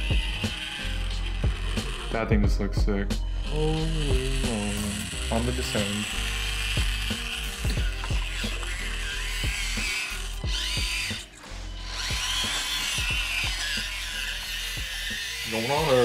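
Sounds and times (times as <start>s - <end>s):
small electric motor whine: 0.0s - 2.4s, 3.1s - 16.0s
background music with a beat: 0.0s - 5.8s, 6.6s - 14.1s.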